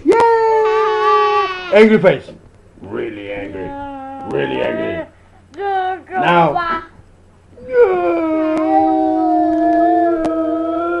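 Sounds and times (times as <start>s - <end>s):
girl howling oooh: 3.6s - 5.1s, 7.6s - 11.0s.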